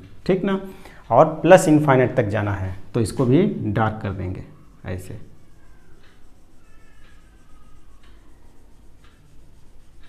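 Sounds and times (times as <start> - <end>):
marker squeaking on whiteboard: 3.0 - 10.0.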